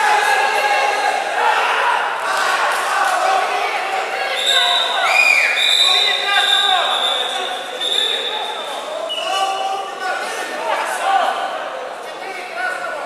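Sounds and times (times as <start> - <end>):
spectators voices and shouts: 0.0 - 13.0.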